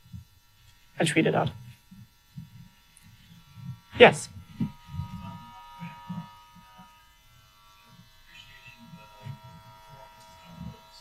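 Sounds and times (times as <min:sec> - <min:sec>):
electrical hum: 0:00.0 - 0:11.0
muffled person speaking: 0:01.0 - 0:01.6, 0:03.9 - 0:04.4.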